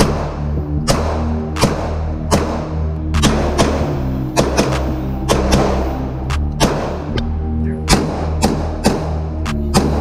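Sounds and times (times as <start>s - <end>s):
pistol shots: 0.0s - 7.2s, 7.8s - 10.0s
background music with bass line: 0.0s - 10.0s.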